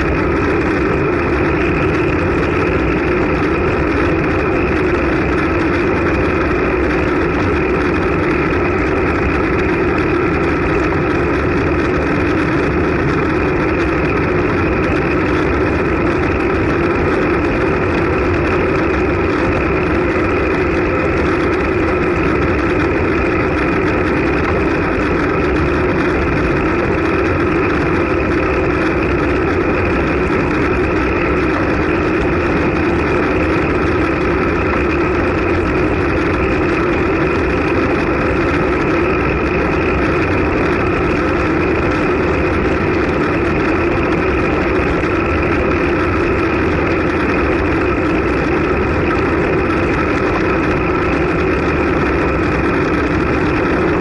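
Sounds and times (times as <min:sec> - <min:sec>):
bike road rumble: 0:00.0 - 0:54.0
wind on microphone: 0:00.0 - 0:54.0.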